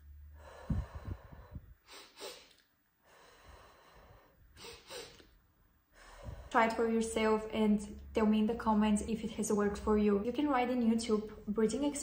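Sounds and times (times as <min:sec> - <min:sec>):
woman exhaling through lips: 0:00.4 - 0:05.3.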